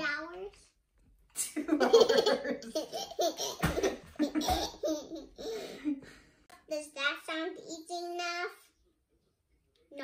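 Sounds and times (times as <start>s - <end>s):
girl laughing: 1.4s - 6.0s.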